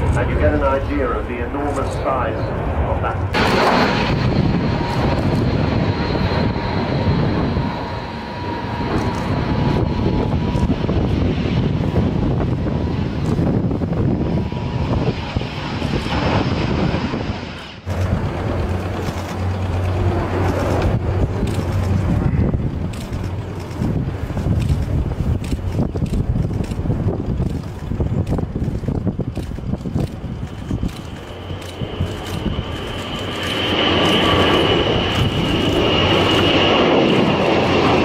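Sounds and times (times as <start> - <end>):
jet engines running: 0.0 - 38.0
low hum: 0.0 - 38.0.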